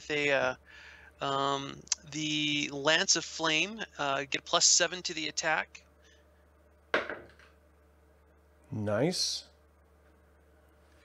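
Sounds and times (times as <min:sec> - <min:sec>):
die knocking on a table: 0:06.9 - 0:07.4.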